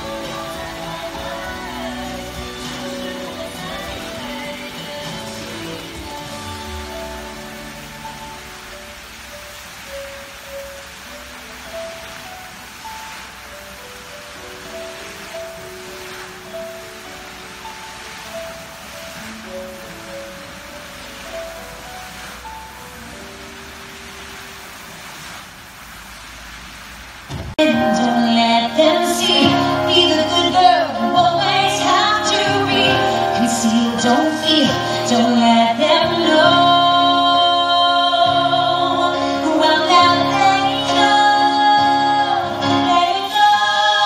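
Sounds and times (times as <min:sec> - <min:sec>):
fountain water jets splashing: 0:00.0 - 0:44.0
slow melody of held notes: 0:27.6 - 0:44.0.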